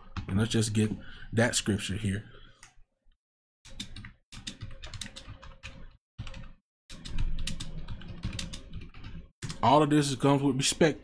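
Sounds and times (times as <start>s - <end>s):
typing on computer keyboard: 3.7s - 9.6s.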